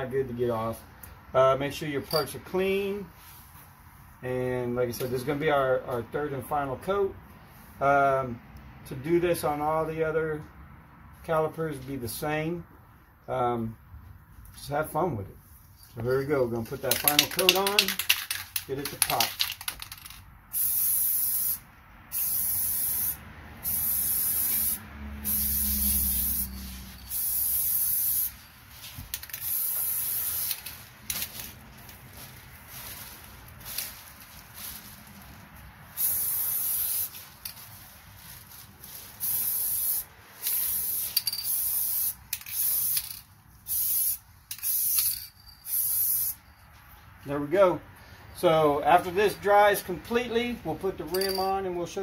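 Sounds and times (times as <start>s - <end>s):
aerosol spray can hissing: 20.5s - 28.4s, 29.1s - 31.3s, 35.9s - 37.6s, 39.1s - 46.4s.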